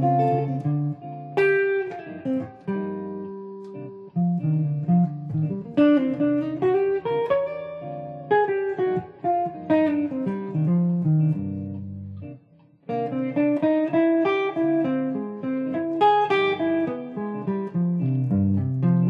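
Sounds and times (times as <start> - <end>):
electric guitar jazz lines: 0.0 - 19.0.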